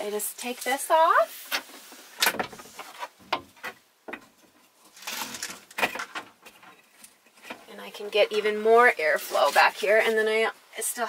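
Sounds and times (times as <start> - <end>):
window frame scraping rattles: 4.9 - 7.6.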